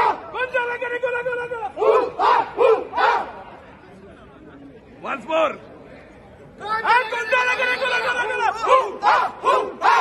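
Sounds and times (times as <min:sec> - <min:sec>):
crowd murmur: 0:01.6 - 0:10.0
men shouting a chant: 0:01.7 - 0:03.3, 0:06.9 - 0:10.0.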